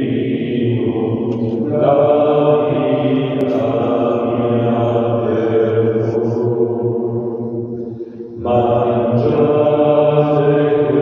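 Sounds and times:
chant-like hymn singing: 0:00.0 - 0:11.0.

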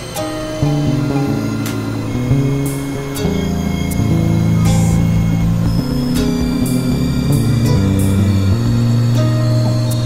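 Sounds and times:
synthesizer drone tones: 0:00.0 - 0:10.0.

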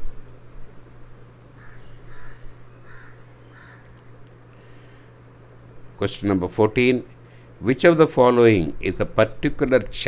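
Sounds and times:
steady low hum: 0:00.0 - 0:10.0
bird calling: 0:01.6 - 0:04.0.

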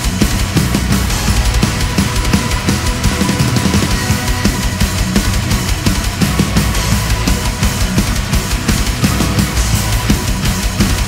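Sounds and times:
fast heavy metal drumming: 0:00.0 - 0:11.0.

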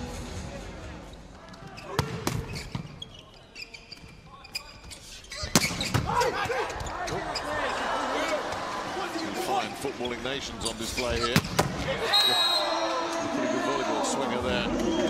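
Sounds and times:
arena noise: 0:00.0 - 0:15.0
crowd and player voices: 0:00.0 - 0:15.0.

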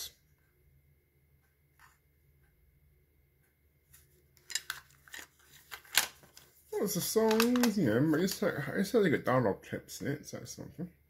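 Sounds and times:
plastic cassette cases clattering: 0:04.4 - 0:06.5, 0:07.1 - 0:08.4.

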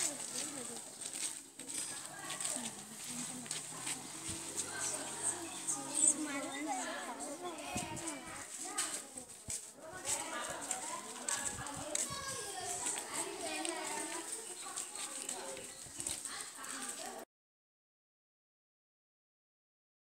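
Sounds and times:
girls talking and chattering: 0:00.0 - 0:17.3.

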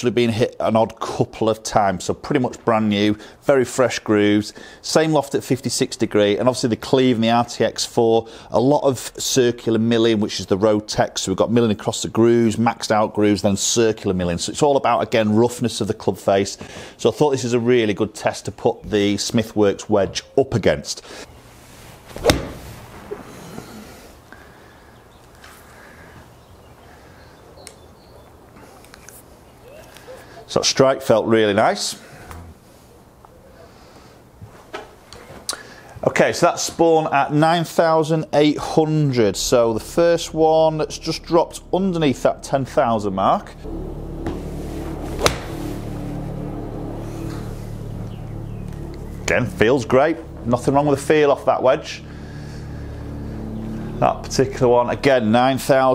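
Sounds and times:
golf club striking ball: 0:22.2 - 0:23.2, 0:45.1 - 0:45.6
low room hum: 0:38.2 - 0:55.9.

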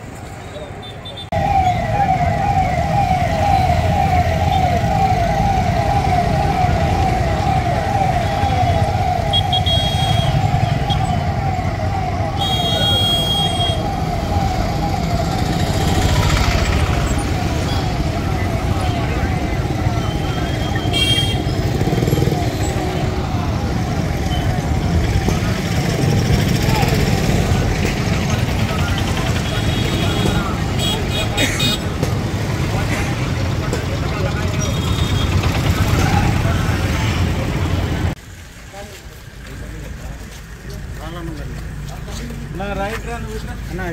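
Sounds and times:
street traffic and engines: 0:00.0 - 0:43.9
police siren yelping: 0:01.3 - 0:27.4.

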